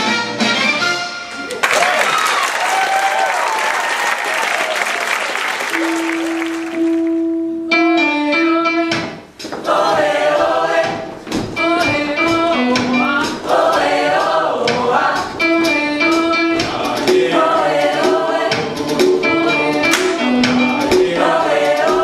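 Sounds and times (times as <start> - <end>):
live band playing: 5.7 - 9.4, 15.4 - 22.0
drums beating: 8.9 - 22.0
choir singing pop song: 9.5 - 22.0.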